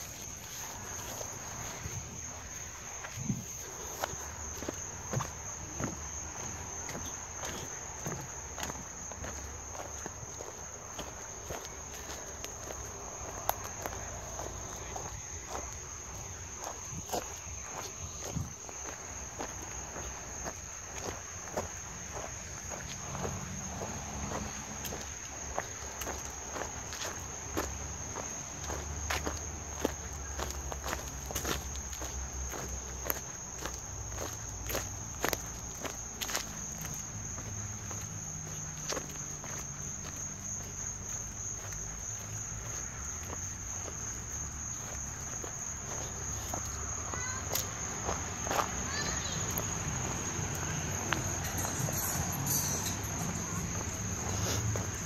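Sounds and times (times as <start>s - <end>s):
footsteps on mulch and grass: 0.0s - 55.0s
insects droning: 0.0s - 55.0s.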